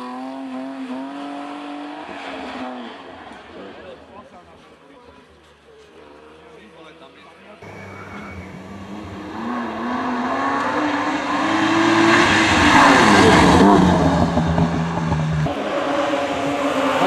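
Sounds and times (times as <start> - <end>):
rally car engine accelerating: 7.6 - 17.0.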